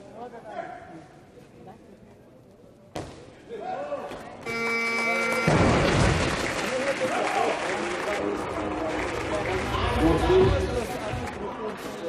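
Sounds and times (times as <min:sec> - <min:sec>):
crowd cheering and applause: 0:04.9 - 0:11.4.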